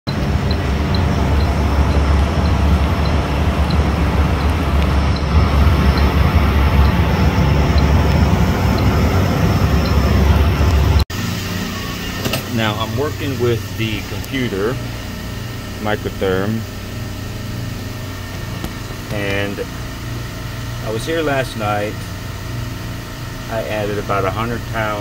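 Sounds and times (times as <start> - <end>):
low rumble of fans: 0.1 - 25.0.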